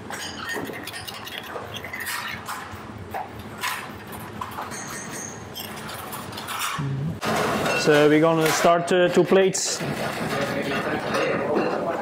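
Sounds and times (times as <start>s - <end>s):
kitchen background noise: 0.0s - 12.0s
metal spoon scraping saucepan: 0.2s - 2.5s.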